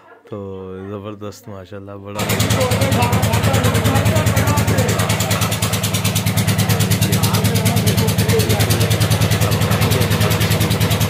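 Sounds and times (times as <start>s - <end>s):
engine running steadily: 2.2s - 11.0s.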